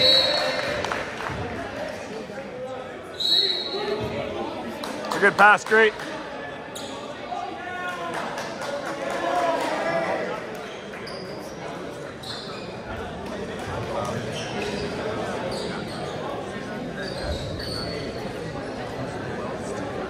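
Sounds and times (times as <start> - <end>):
voices and chatter: 0.0 - 20.0
sneaker squeaks: 3.1 - 4.4, 6.7 - 7.2, 10.6 - 13.1, 14.0 - 18.3.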